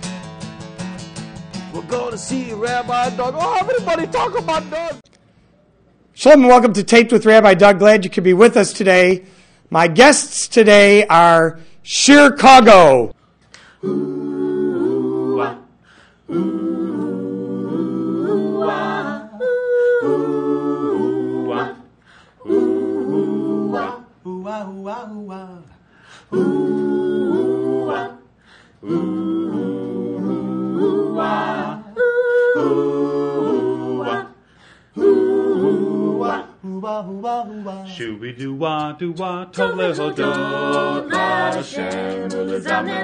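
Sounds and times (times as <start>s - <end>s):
a cappella group singing in harmony: 1.7s - 3.4s, 13.6s - 43.0s.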